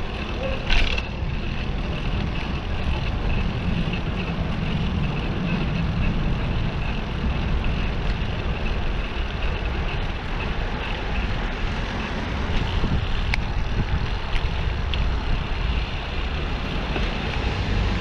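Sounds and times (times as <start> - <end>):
bicycle road noise: 0.0 - 18.0
wind rumble on microphone: 0.0 - 18.0.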